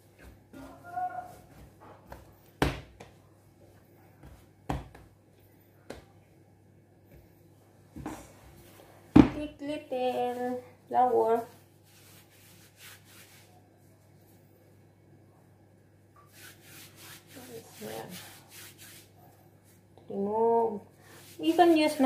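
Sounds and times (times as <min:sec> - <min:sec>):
hands kneading dough: 0:00.0 - 0:06.3, 0:10.0 - 0:14.4, 0:16.2 - 0:19.9.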